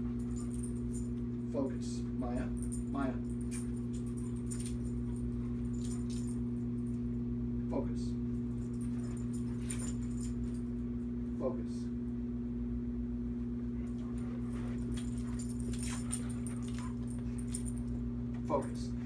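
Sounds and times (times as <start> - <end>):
dog collar tags jingling: 0.0 - 1.3, 2.4 - 7.0, 8.4 - 10.8, 13.9 - 18.0
steady electrical hum: 0.0 - 19.0.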